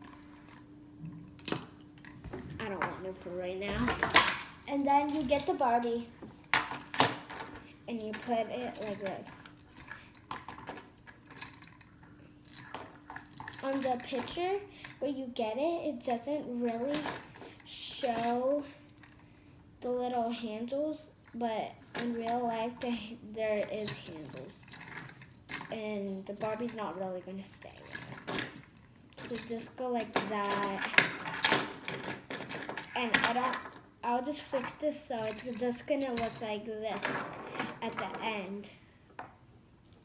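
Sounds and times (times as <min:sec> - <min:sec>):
faint low hum: 0:00.0 - 0:40.0
plastic toy parts clicking: 0:30.2 - 0:33.8.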